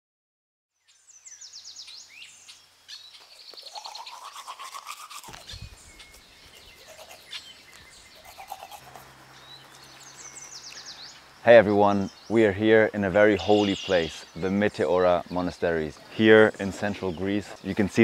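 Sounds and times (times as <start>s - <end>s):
birds chirping and calling: 0.8s - 18.0s
person brushing teeth: 3.6s - 5.6s, 6.6s - 7.5s, 8.1s - 9.2s.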